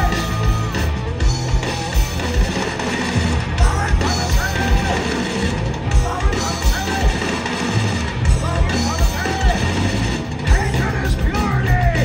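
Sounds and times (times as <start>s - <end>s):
bass guitar: 0.0s - 12.0s
distorted electric guitars: 0.0s - 12.0s
pounding drum kit: 0.0s - 12.0s.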